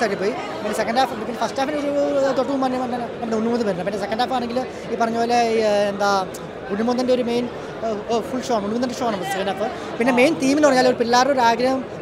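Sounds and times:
man talking: 0.0 - 11.9
crowd chattering: 0.0 - 12.0.

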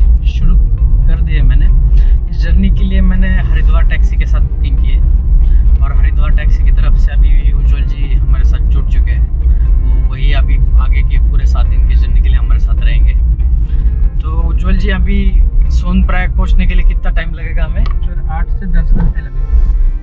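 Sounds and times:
people talking: 0.0 - 5.0, 5.8 - 13.2, 14.2 - 19.4
car cabin rumble: 0.0 - 20.0.

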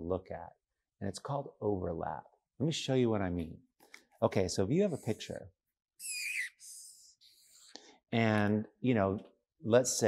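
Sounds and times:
marker tip squeak: 6.0 - 7.1.

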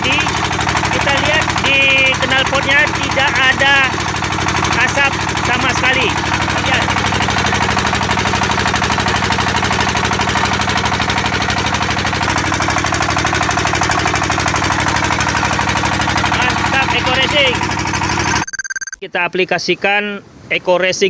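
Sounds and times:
diesel engine chugging: 0.0 - 18.4.

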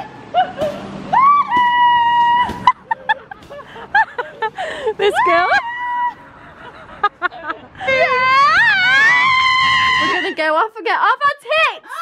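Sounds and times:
young woman screaming: 1.1 - 2.7, 5.1 - 6.2, 7.8 - 10.4.

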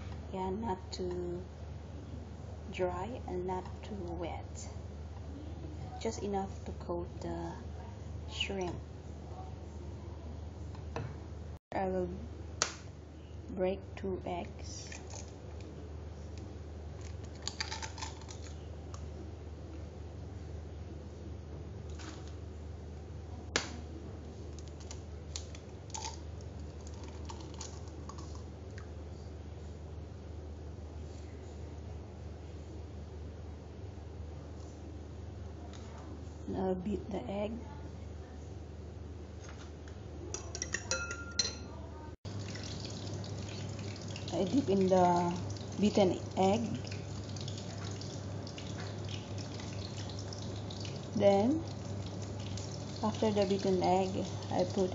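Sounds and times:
steady low hum: 0.0 - 54.9
eggshell cracking: 17.1 - 18.5
spoon beating eggs in a bowl: 40.4 - 41.6
spoon clinking against bowl: 40.4 - 41.7.

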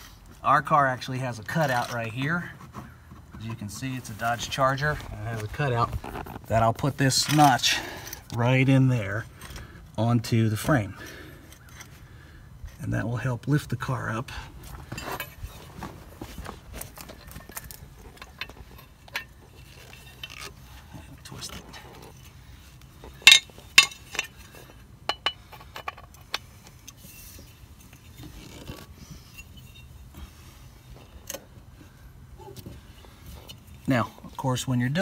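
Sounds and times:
metal jack clinking and rattling: 23.2 - 24.5.

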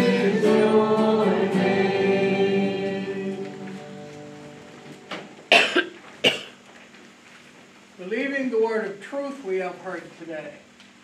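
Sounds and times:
acoustic guitars strummed chord: 0.0 - 6.6
person coughing: 5.5 - 6.6.

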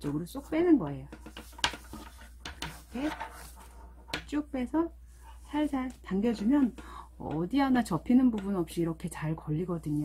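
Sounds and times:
ribbon rustling: 0.0 - 4.2.

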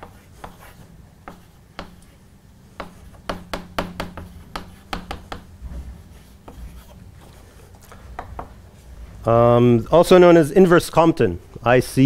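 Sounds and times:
chalk tapping on blackboard: 0.0 - 8.6.

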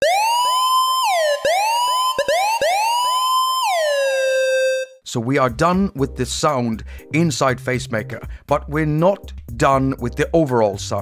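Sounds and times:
synthesized dub siren with echoes: 0.0 - 5.0.

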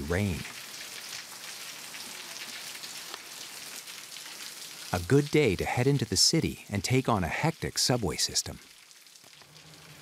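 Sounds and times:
heavy rain falling: 0.0 - 8.4.

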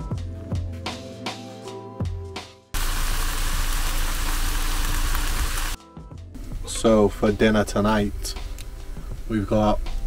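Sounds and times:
meat sizzling in frying pan: 2.8 - 5.8.

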